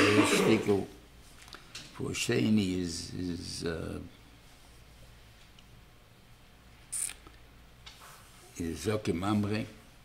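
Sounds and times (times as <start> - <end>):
low steady hum: 0.0 - 10.0
short sharp hiss: 6.9 - 7.2.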